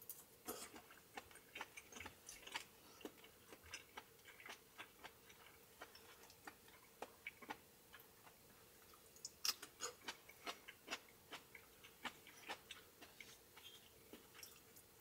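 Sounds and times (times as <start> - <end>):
quiet eating sounds: 0.0 - 15.0.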